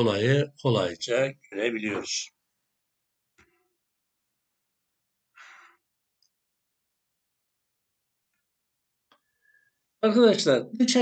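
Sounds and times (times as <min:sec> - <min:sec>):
breath into microphone: 0:05.4 - 0:05.9.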